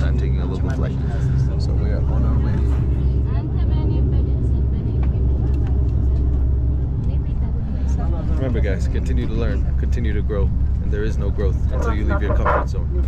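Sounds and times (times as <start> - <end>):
turboprop engines droning: 0.0 - 13.0.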